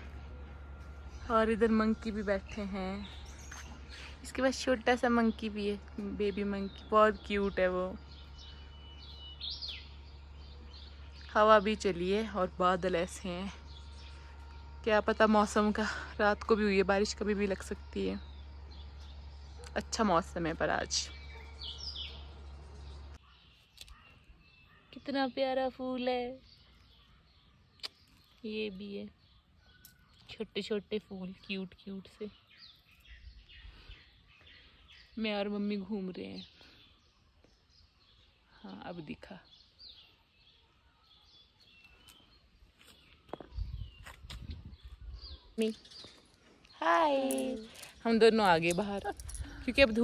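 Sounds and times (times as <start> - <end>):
faint low rumble: 0.0 - 23.2
bird chirps: 0.0 - 50.0.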